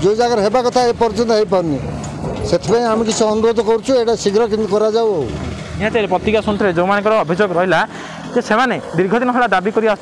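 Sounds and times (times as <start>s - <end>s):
man speaking into a microphone: 0.0s - 10.0s
road traffic hum: 0.0s - 10.0s.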